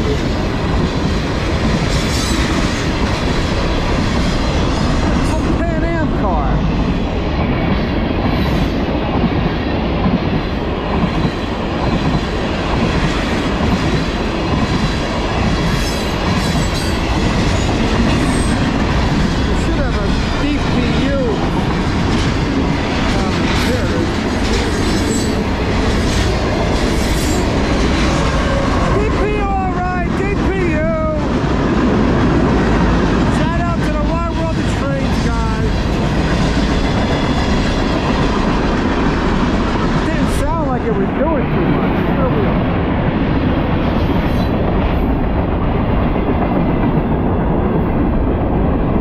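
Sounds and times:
freight train rumbling past: 0:00.0 - 0:49.0.

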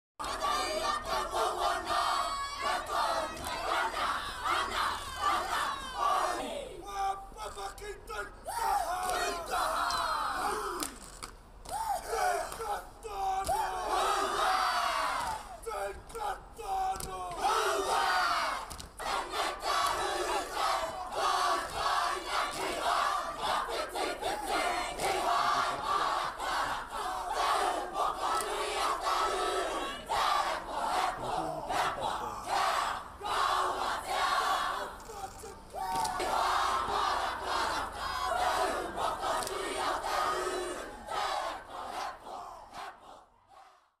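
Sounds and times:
group chanting in unison: 0:00.2 - 0:07.3, 0:08.2 - 0:11.0, 0:11.8 - 0:44.0.

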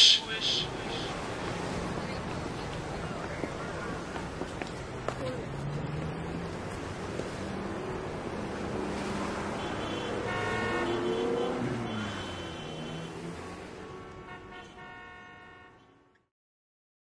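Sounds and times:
vehicles passing: 0:00.0 - 0:16.2
car horn: 0:09.4 - 0:16.3.

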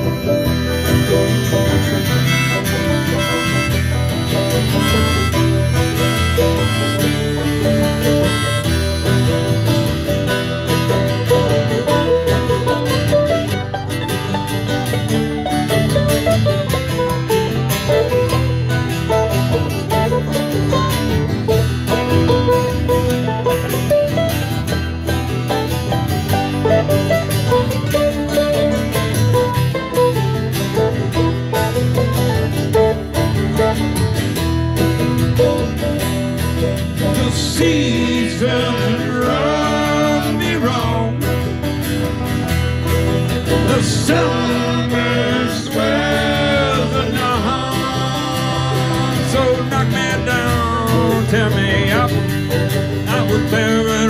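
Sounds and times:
banjo: 0:00.0 - 0:54.0
mandolin: 0:00.0 - 0:54.0
strummed acoustic guitar: 0:00.0 - 0:54.0.

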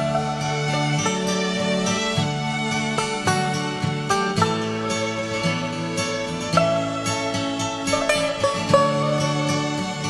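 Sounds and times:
plucked string notes: 0:00.0 - 0:10.0.

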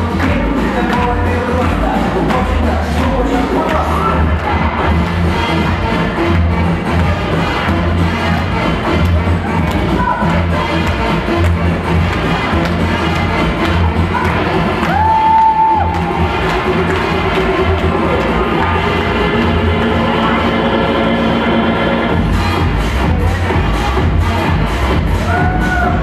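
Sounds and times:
latin dance music: 0:00.0 - 0:26.0
audience cheering: 0:14.2 - 0:16.3.

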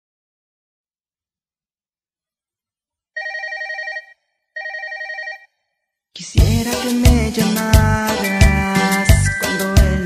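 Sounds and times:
electronic telephone ringing: 0:03.2 - 0:05.6.

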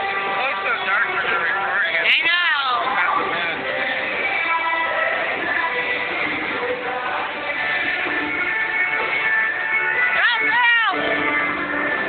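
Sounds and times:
loud music: 0:00.0 - 0:12.0.

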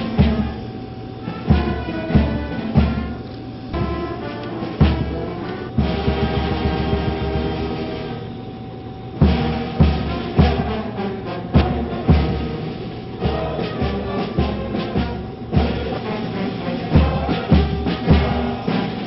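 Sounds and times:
brass band chords: 0:00.0 - 0:19.0
bass drum beat: 0:11.6 - 0:12.6, 0:13.2 - 0:19.0.

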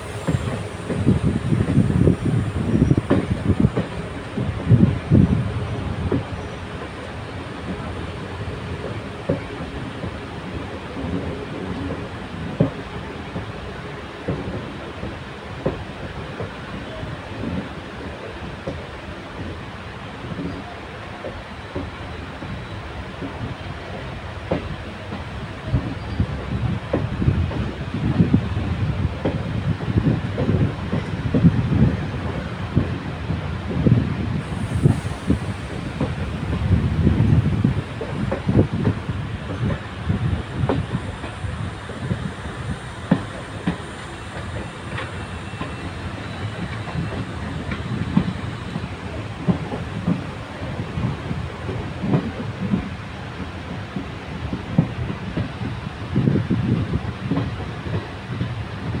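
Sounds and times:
rush of track and air noise: 0:00.0 - 0:59.0
train wheels clattering on track: 0:00.0 - 0:59.0.

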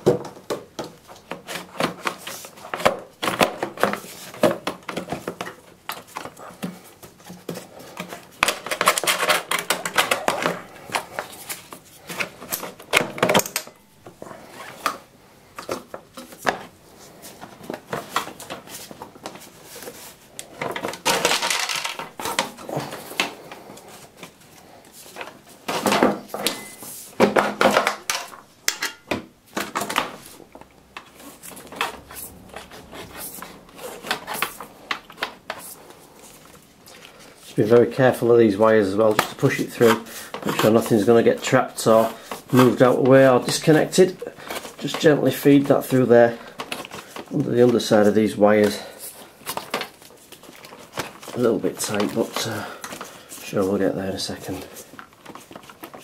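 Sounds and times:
cable scraping against metal: 0:31.1 - 0:34.7.

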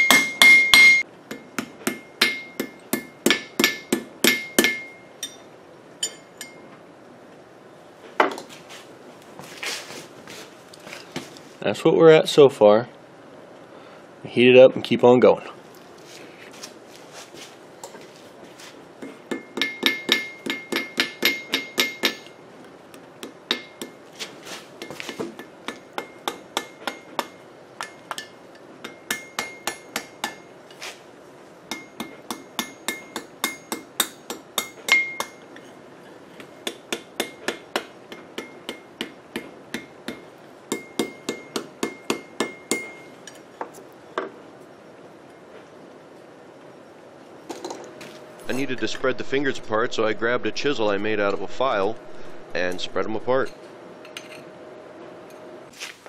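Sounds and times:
high anvil ringing: 0:00.0 - 0:05.4
hammer striking steel on anvil: 0:00.0 - 0:06.6, 0:19.0 - 0:22.4, 0:23.2 - 0:24.0, 0:24.8 - 0:30.5, 0:31.7 - 0:35.6, 0:36.4 - 0:43.1.

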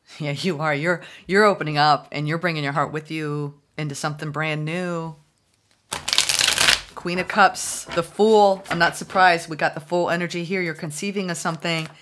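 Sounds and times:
cards being shuffled: 0:05.5 - 0:07.1, 0:11.5 - 0:12.0.

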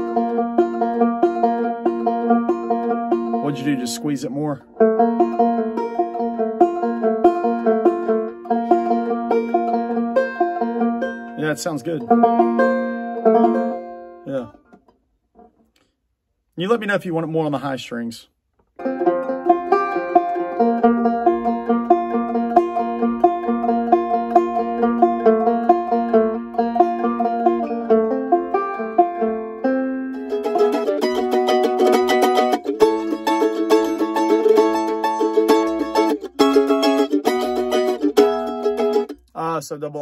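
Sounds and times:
banjo cross-picked bluegrass line: 0:00.0 - 0:15.5, 0:18.8 - 0:40.0.

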